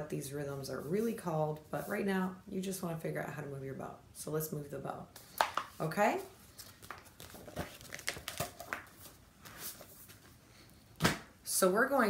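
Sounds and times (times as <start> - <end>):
paper rustling: 6.4 - 10.4.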